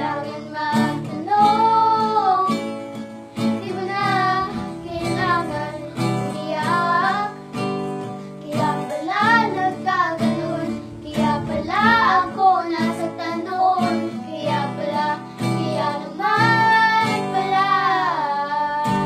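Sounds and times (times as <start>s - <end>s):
girls singing together: 0.0s - 19.0s
strummed acoustic guitar: 0.0s - 19.0s.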